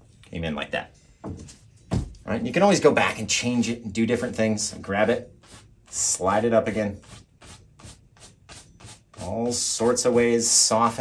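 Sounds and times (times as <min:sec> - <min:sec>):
brush strokes on canvas: 0:05.3 - 0:11.0.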